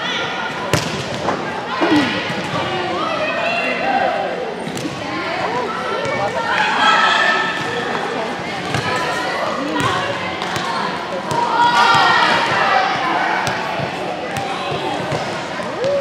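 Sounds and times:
volleyballs hit and bouncing: 0.5s - 1.5s.

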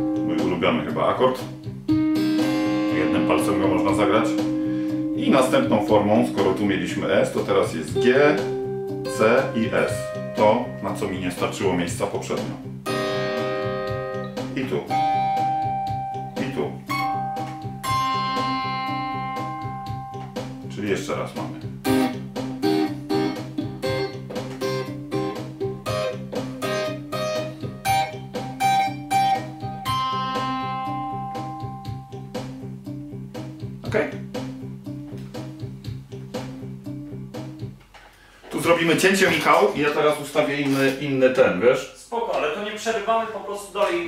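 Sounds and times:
electric guitar chord ringing: 0.0s - 1.0s, 1.7s - 11.9s, 12.6s - 20.8s, 21.8s - 33.8s.

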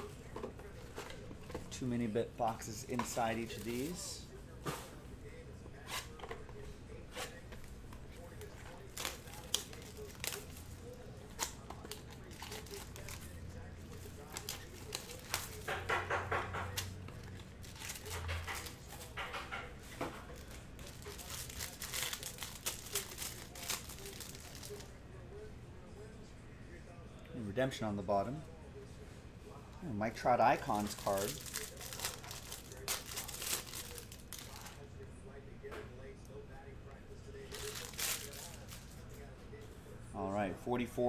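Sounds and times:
plastic wrap tearing and crinkling: 8.5s - 13.3s, 13.9s - 19.4s, 20.2s - 24.9s, 30.5s - 34.8s, 37.4s - 39.0s.

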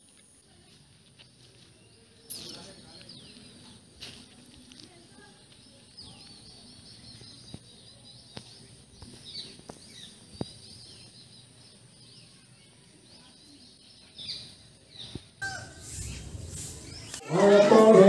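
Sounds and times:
outdoor background noise: 0.0s - 18.0s
small birds chirping: 0.4s - 17.4s.

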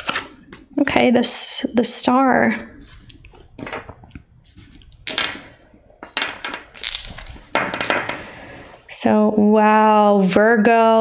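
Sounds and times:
cards rustling and slapping on table: 5.0s - 5.5s.

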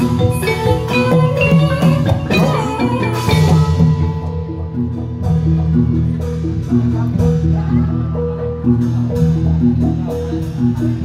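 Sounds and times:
metallophones striking a melody: 0.0s - 11.0s
low sustained bass: 3.4s - 11.0s.

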